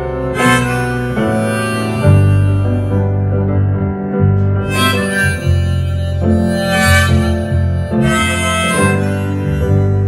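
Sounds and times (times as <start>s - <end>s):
harmonica chords: 0.0s - 10.0s
low piano notes: 0.0s - 10.0s.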